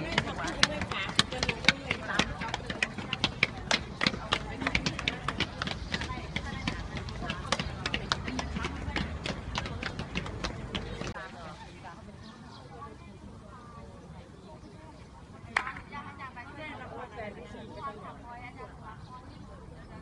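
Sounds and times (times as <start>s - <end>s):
footsteps on concrete stairs: 0.0s - 11.2s
voices chattering: 0.0s - 20.0s.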